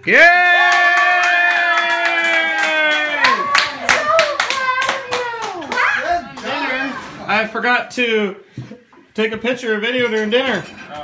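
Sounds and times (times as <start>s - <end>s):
voices cheering: 0.0s - 7.0s
people clapping: 0.2s - 7.0s.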